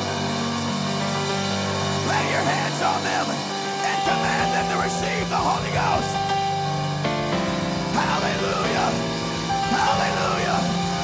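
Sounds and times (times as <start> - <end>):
worship band sustained chords: 0.0 - 11.0.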